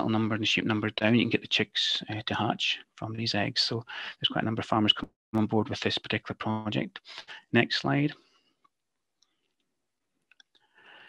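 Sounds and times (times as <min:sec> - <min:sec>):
man speaking: 0:00.0 - 0:08.2.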